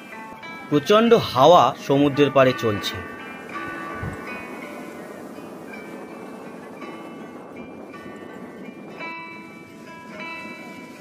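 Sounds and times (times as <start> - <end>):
soft instrumental music: 0.0 - 11.0
surf breaking: 0.0 - 11.0
wind rushing: 0.7 - 11.0.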